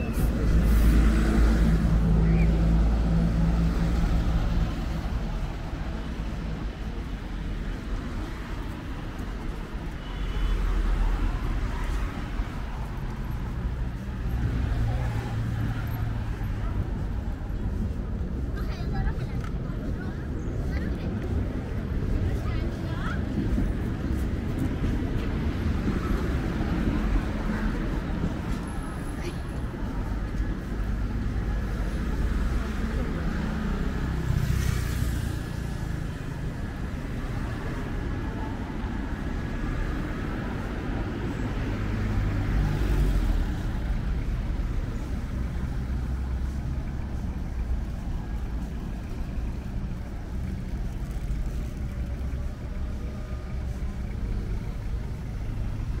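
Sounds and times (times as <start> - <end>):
low rumble of road traffic: 0.0 - 56.0
vehicles passing close by: 0.0 - 56.0.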